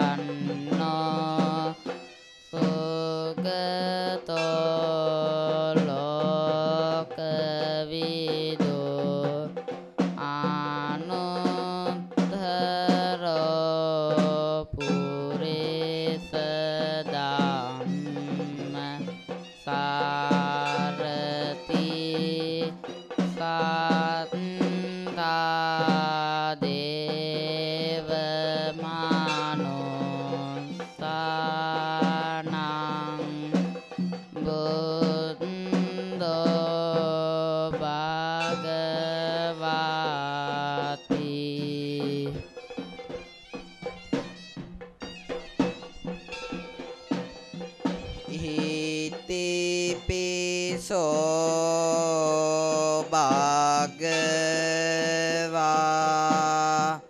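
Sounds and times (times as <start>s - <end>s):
reed pipe melody: 0.0s - 3.6s, 14.7s - 26.9s, 38.4s - 57.0s
drums beating: 0.0s - 57.0s.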